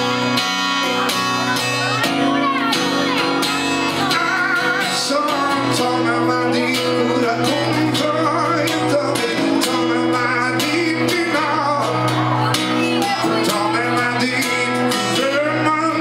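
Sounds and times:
acoustic guitar strumming: 0.0 - 16.0
man singing: 3.5 - 16.0.

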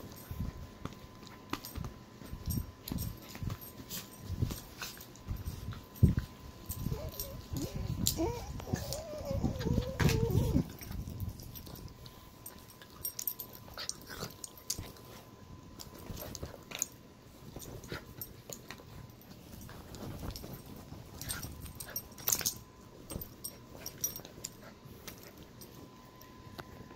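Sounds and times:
rustling and scratching on blanket: 0.0 - 26.9
small dog whining: 6.8 - 11.0.

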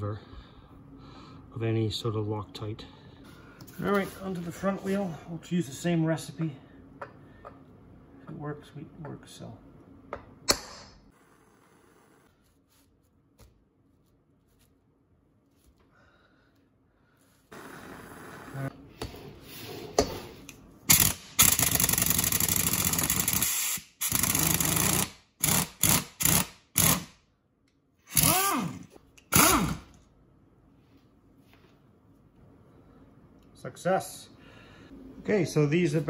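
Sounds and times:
hammer striking impact driver: 20.9 - 27.1, 28.1 - 29.9
pneumatic impact wrench: 20.9 - 27.2, 28.1 - 29.9.

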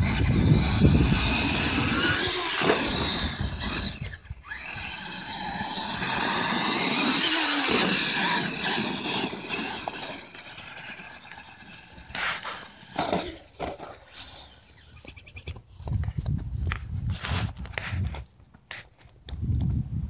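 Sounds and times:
toy truck electric motor whining: 0.0 - 15.2.

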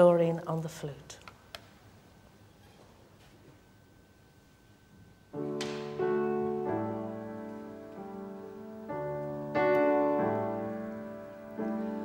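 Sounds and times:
piano playing held chords: 5.3 - 12.0.

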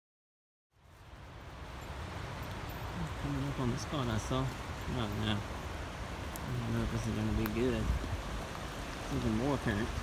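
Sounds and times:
low rumble of wind on microphone: 0.8 - 10.0.

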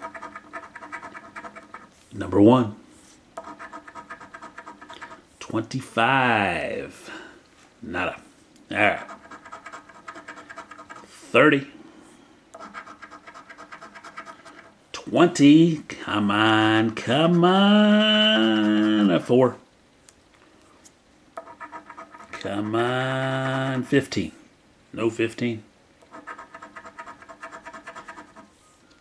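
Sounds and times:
coin scraping scratch-off ticket: 0.0 - 1.9, 3.4 - 5.2, 8.9 - 11.1, 12.6 - 14.7, 18.2 - 19.2, 21.4 - 23.8, 26.1 - 28.5.

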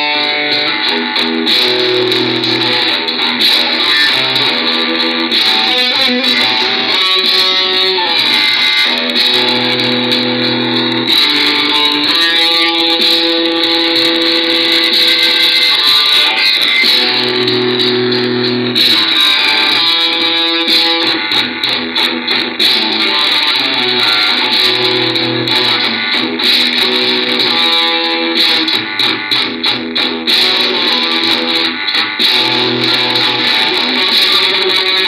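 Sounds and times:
electric guitar metal chords: 0.0 - 35.0.

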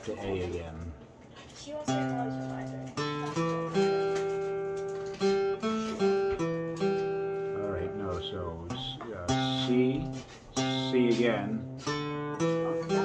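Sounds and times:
acoustic guitar chords strummed: 0.0 - 13.0.

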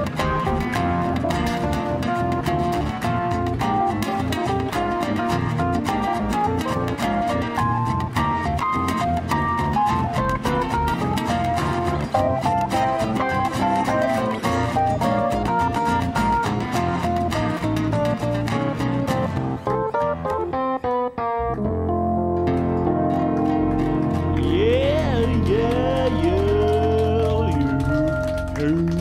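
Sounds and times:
acoustic guitar: 0.0 - 29.0
electric keyboard: 0.0 - 29.0.

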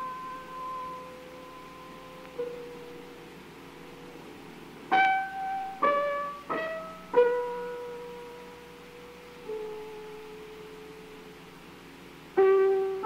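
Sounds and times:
piano single notes: 0.0 - 3.4, 4.9 - 11.3, 12.3 - 13.0.

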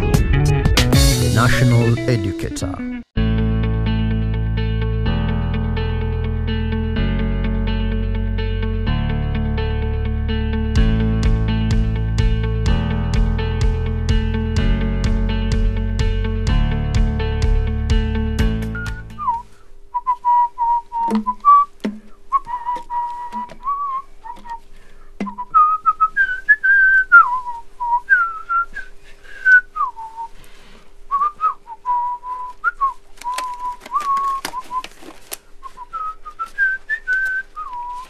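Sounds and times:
guitar music: 0.0 - 19.2
person whistling a tune: 18.6 - 21.7, 22.3 - 24.6, 25.2 - 30.4, 31.1 - 35.0, 35.6 - 38.0.

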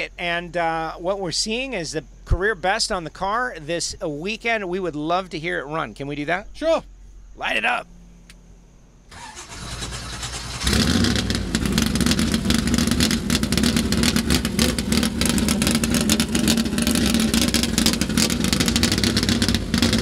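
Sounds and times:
engine starter cranking: 9.1 - 13.7
car engine running loudly: 9.4 - 20.0.

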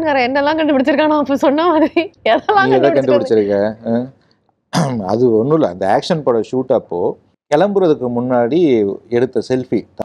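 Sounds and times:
people talking in interview: 0.0 - 4.2.

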